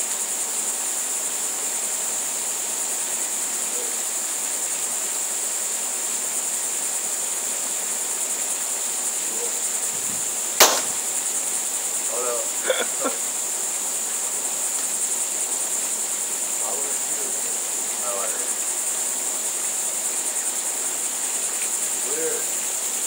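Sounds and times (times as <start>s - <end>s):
high insect trilling: 0.0s - 23.0s
air pistol firing pop: 10.6s - 11.1s.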